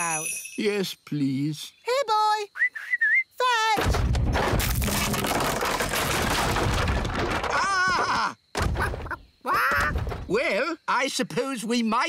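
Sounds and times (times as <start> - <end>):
wooden boat crunching and splintering: 3.8 - 9.0.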